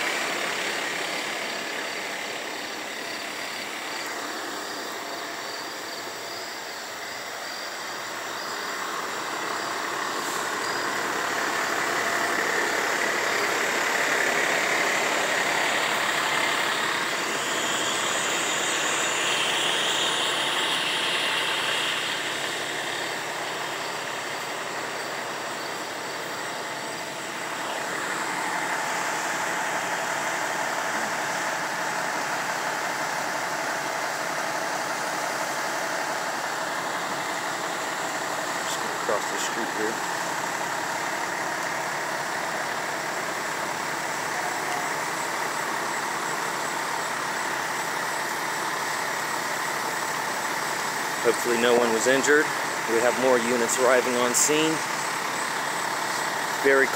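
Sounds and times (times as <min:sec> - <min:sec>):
diesel engines running: 0:00.0 - 0:56.9.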